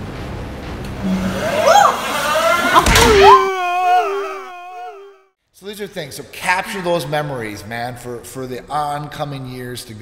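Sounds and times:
long drawn-out yell: 1.0s - 5.3s
people shouting and yelling: 1.1s - 5.2s.

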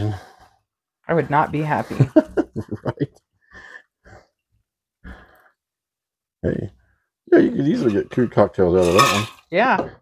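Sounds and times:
soft breaths: 3.4s - 5.7s.

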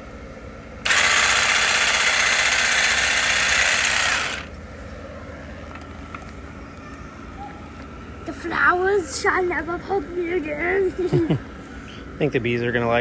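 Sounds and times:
hedge trimmer buzzing: 0.8s - 4.6s.

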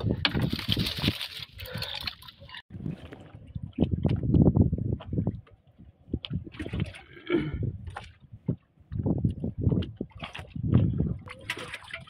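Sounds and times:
water sloshing and splashing: 0.0s - 4.3s, 5.0s - 12.0s.

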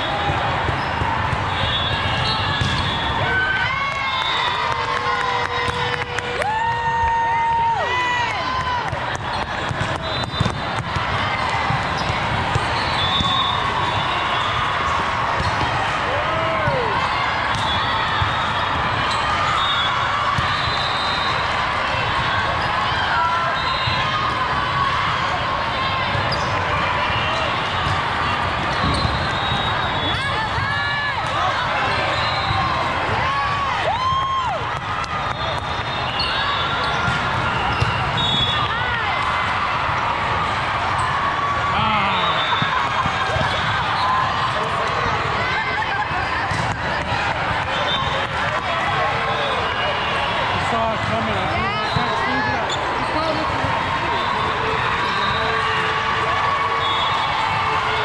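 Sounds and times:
sneaker squeaks on court: 0.8s - 3.0s, 12.0s - 14.1s, 28.7s - 30.1s.

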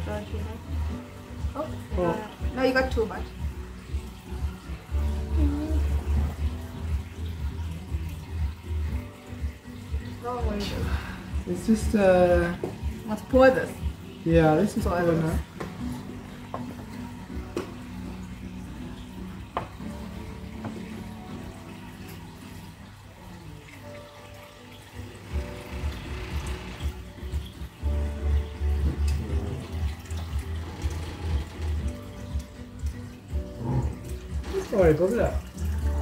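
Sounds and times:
background music with held notes: 0.0s - 36.0s
water pouring into aquarium: 0.0s - 36.0s.

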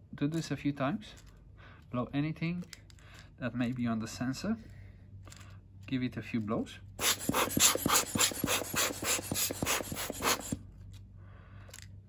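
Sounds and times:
rubber air blower puffing: 7.0s - 10.6s.

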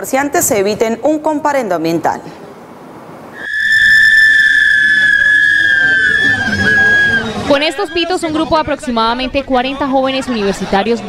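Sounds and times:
shrill whistles blowing: 3.4s - 8.2s.

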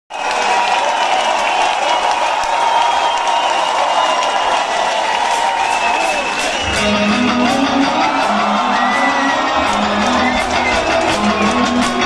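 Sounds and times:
crowd applauding and cheering: 0.1s - 12.0s.

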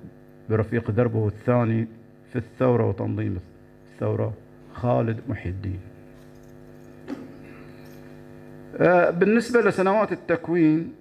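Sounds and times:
electrical mains hum: 0.0s - 11.0s
man speaking: 0.5s - 6.0s, 8.7s - 11.0s.

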